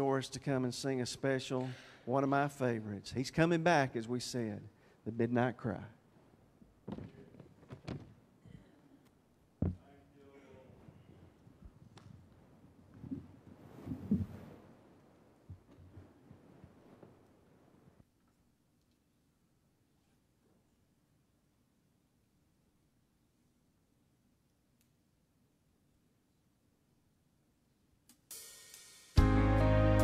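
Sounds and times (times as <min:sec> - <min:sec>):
microphone handling thumps: 0:06.8 - 0:08.2, 0:09.6 - 0:09.9, 0:10.7 - 0:14.7, 0:15.4 - 0:17.2
microphone rustle: 0:09.6 - 0:18.0
faint click: 0:24.5 - 0:25.0.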